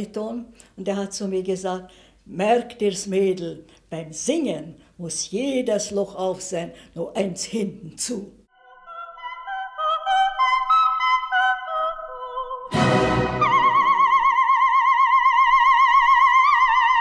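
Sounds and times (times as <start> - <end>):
operatic soprano singing: 8.5 - 17.0.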